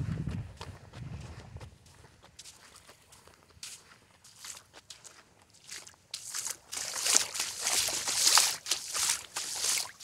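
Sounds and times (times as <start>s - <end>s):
footsteps on sand: 0.0s - 10.0s.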